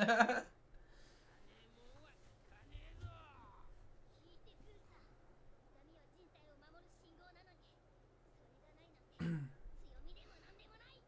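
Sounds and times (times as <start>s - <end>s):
faint background dialogue: 1.4s - 11.0s
person clearing throat: 9.2s - 9.6s.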